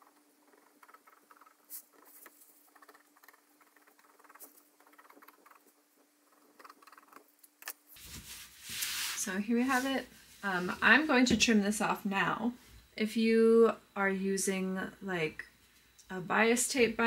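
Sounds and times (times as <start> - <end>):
faint steady hum: 0.0 - 17.0
fabric rustling: 8.0 - 11.1.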